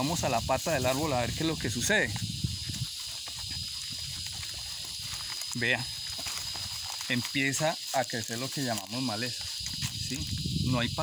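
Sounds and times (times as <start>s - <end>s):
steady high hiss: 0.0s - 11.0s.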